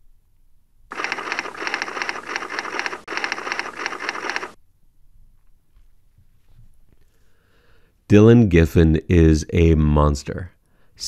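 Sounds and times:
rapid typewriter-like clicking: 0:00.9 - 0:04.6.

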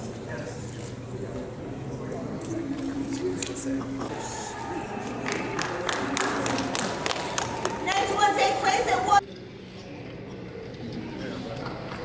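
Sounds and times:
chatter of people: 0:00.0 - 0:12.0
room hum: 0:00.0 - 0:12.0.

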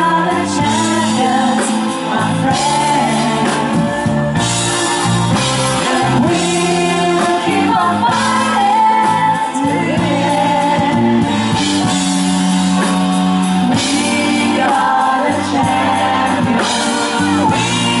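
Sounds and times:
backing vocals: 0:00.0 - 0:11.4, 0:13.6 - 0:18.0
woman singing lead: 0:00.0 - 0:12.0, 0:13.5 - 0:18.0
drums: 0:00.0 - 0:18.0
live rock band playing: 0:00.0 - 0:18.0.

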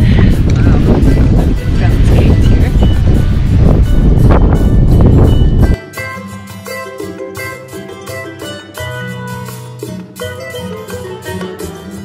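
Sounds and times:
wind buffeting microphone: 0:00.0 - 0:05.8
latin guitar music: 0:00.0 - 0:12.0.

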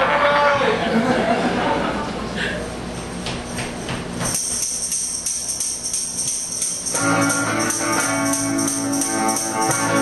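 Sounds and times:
tambourine jingling: 0:02.9 - 0:10.0
tambourine tapping: 0:03.1 - 0:10.0.

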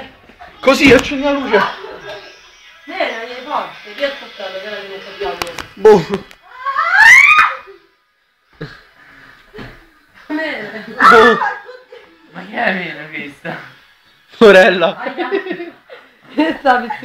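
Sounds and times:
loud rising shriek: 0:06.5 - 0:07.8.

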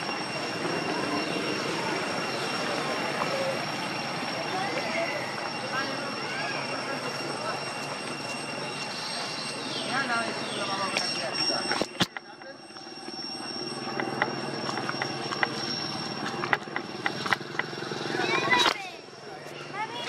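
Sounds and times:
high-pitched whine: 0:00.0 - 0:20.0
steady noisy background: 0:00.0 - 0:20.0.

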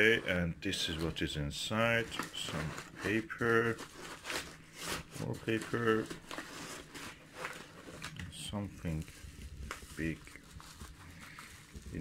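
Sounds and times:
packing paper rustling: 0:01.9 - 0:12.0.

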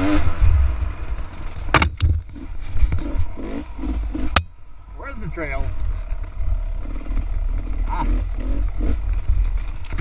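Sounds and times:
dirt bike engine revving: 0:00.0 - 0:00.6, 0:02.3 - 0:10.0
wind rumble on microphone: 0:00.0 - 0:04.5, 0:05.6 - 0:10.0.

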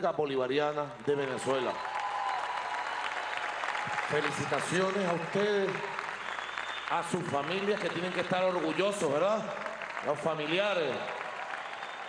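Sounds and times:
audience applauding: 0:01.0 - 0:12.0.

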